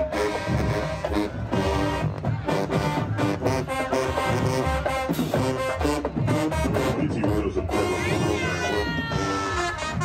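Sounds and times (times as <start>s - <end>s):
marching band brass playing: 0.0s - 10.0s.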